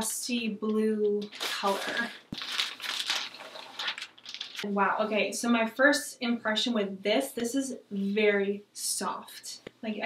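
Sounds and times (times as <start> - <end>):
plastic bag crinkling: 1.1 - 4.7.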